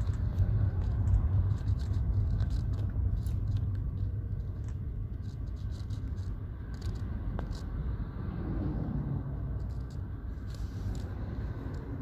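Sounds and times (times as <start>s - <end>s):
car interior road noise: 0.0s - 12.0s.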